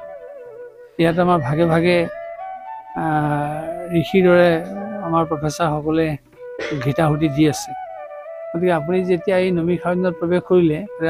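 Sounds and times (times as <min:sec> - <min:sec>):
man speaking: 0:01.0 - 0:02.1, 0:03.0 - 0:07.8.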